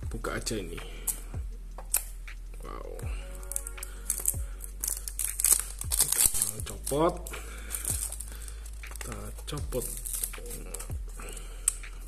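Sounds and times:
background music: 0:00.0 - 0:12.0
shrink-wrap pulled off box: 0:03.5 - 0:07.1.

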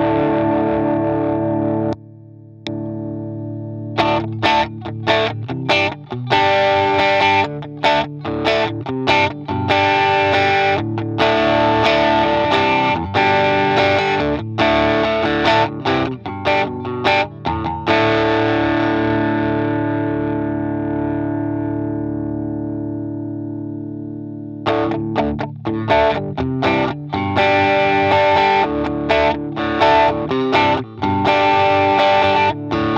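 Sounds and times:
overdriven electric guitar: 0:00.0 - 0:32.9.

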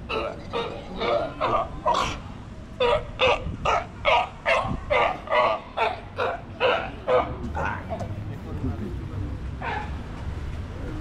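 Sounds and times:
sea lion barking: 0:00.0 - 0:08.0.

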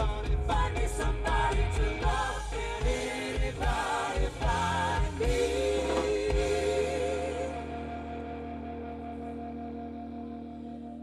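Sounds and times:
rock band sustained chord: 0:00.0 - 0:11.0.

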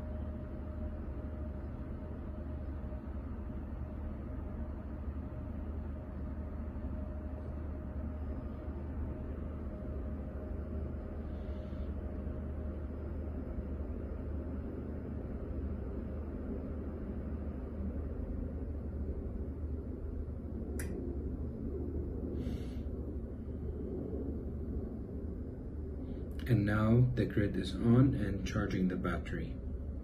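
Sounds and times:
sharp click: 0:20.8 - 0:21.0.

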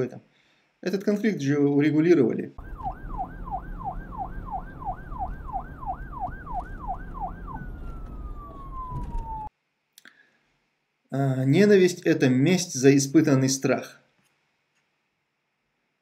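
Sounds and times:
siren yelping: 0:02.6 - 0:09.5.

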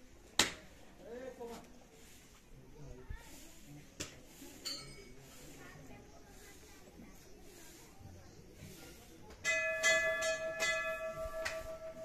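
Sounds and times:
metal bell struck by hand: 0:09.4 - 0:12.0.

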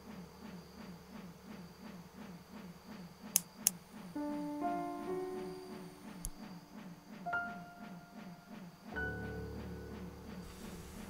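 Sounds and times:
low pulsing film score: 0:00.0 - 0:11.0
sharp clicks: 0:03.3 - 0:03.8.

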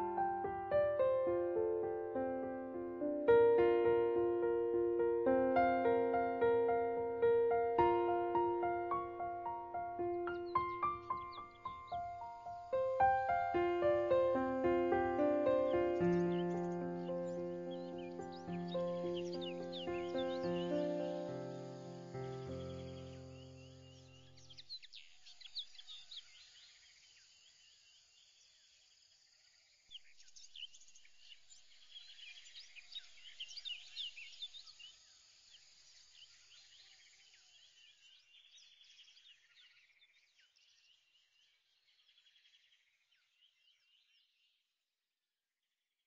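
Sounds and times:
background music: 0:00.0 - 0:23.7
birds chirping: 0:00.0 - 0:26.8.

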